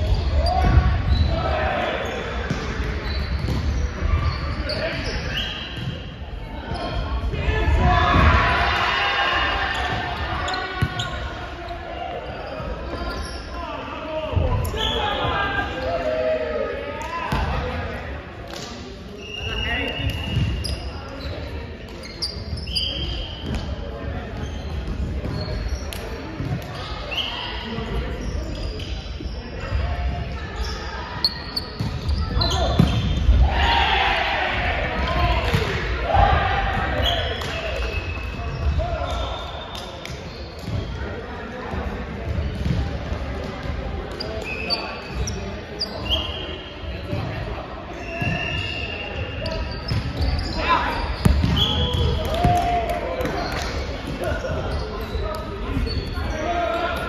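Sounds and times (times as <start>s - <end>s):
sneakers squeaking on court: 0.0s - 1.4s, 2.0s - 7.5s, 9.7s - 13.7s, 19.2s - 33.4s, 36.9s - 57.0s.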